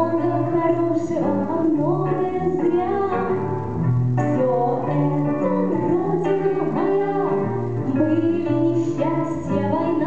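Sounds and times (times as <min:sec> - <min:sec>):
live band with guitar: 0:00.0 - 0:10.0.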